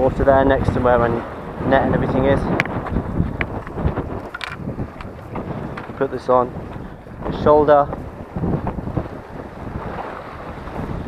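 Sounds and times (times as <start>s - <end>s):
wind buffeting microphone: 0.0s - 11.0s
camera handling clicks and knocks: 3.4s - 5.9s.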